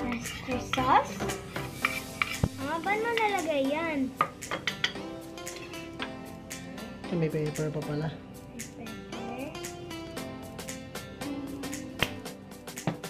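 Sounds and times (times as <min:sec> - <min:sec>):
spoon scraping ceramic plate: 0:00.0 - 0:02.6
background music: 0:00.0 - 0:13.0.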